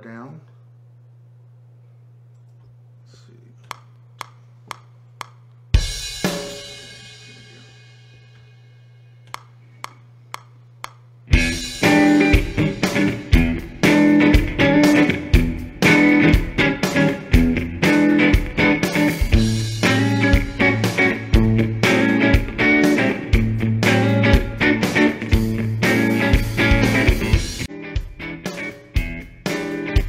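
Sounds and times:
steady electric hum: 0:00.0 - 0:30.0
sharp clicks: 0:03.6 - 0:05.6, 0:09.2 - 0:11.0
drum beat: 0:03.7 - 0:07.8, 0:10.3 - 0:30.0
electric guitar: 0:11.3 - 0:30.0.

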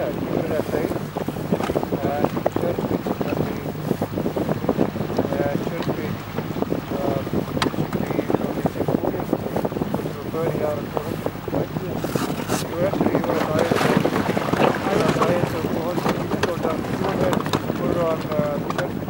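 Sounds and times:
outboard motor running: 0:00.0 - 0:19.0
wind buffeting microphone: 0:00.0 - 0:19.0.

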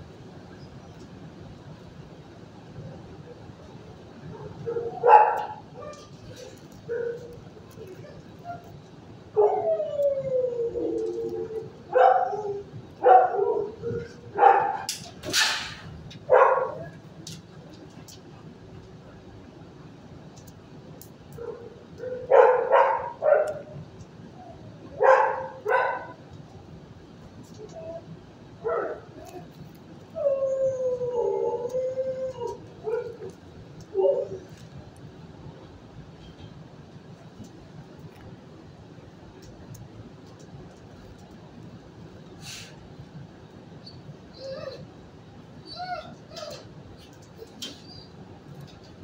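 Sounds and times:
dog barking: 0:04.3 - 0:06.1, 0:09.4 - 0:09.6, 0:11.9 - 0:14.9, 0:16.3 - 0:16.9, 0:21.4 - 0:23.8, 0:25.0 - 0:26.2, 0:28.6 - 0:29.1
dog howling: 0:09.3 - 0:14.9, 0:16.3 - 0:17.0, 0:24.4 - 0:26.2, 0:30.2 - 0:34.5
short hissing noise: 0:42.4 - 0:42.8.

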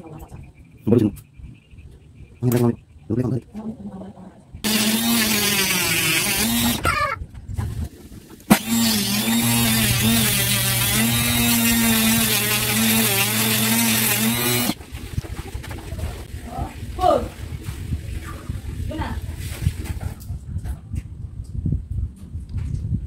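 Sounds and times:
rotary tool drilling into wood: 0:04.6 - 0:06.9, 0:08.5 - 0:14.8.

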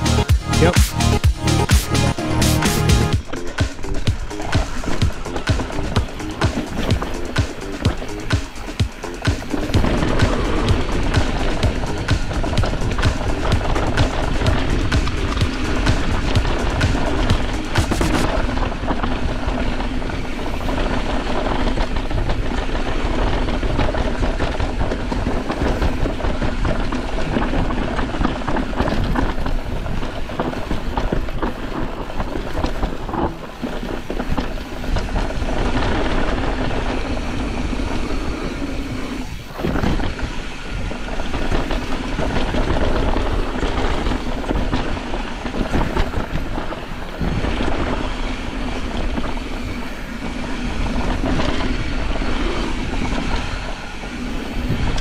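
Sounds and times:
tyres rolling over dirt: 0:02.3 - 0:55.0
wind on microphone: 0:03.1 - 0:55.0
bike chain rattling: 0:03.2 - 0:18.4.

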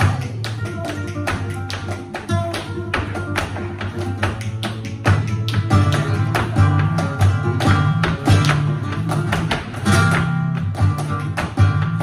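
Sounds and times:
flamenco guitar playing: 0:00.0 - 0:12.0.

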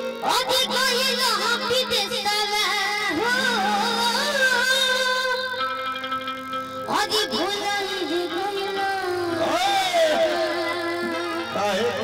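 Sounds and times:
boy singing into microphone: 0:00.0 - 0:06.2, 0:06.8 - 0:12.0.

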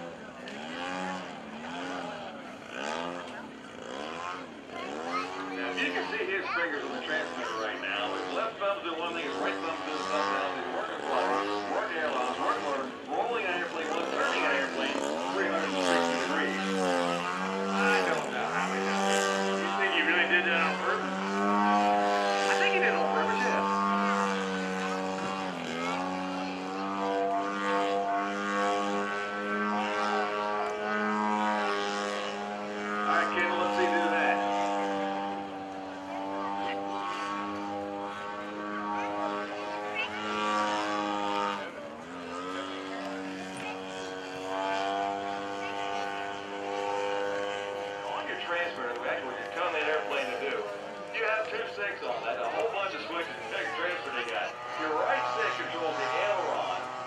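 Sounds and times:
model airplane engine droning: 0:00.0 - 0:57.0.

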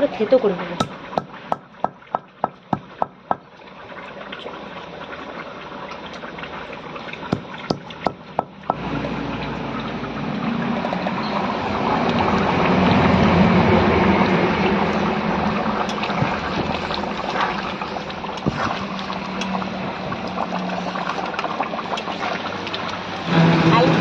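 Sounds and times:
gravy boiling and bubbling: 0:00.0 - 0:24.0.

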